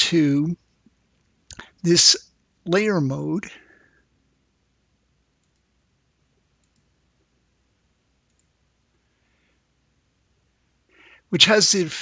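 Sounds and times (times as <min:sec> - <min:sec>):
faint computer mouse clicks: 0:05.4 - 0:05.7, 0:06.6 - 0:06.9, 0:08.2 - 0:08.5.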